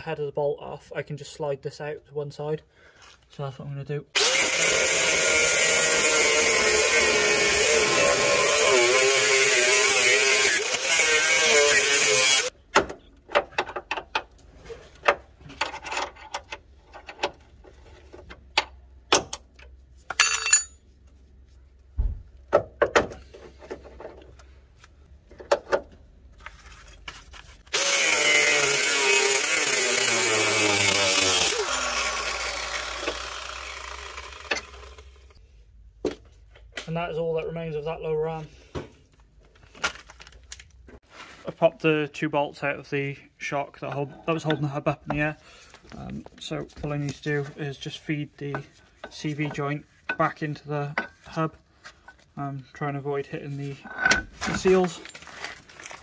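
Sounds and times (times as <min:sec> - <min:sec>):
angle grinder cutting bolt: 0:04.2 - 0:12.5, 0:27.7 - 0:35.4.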